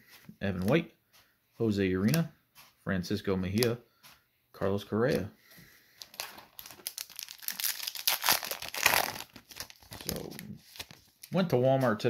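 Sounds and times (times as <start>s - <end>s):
card pack wrapper crinkling and tearing: 6.0s - 11.3s.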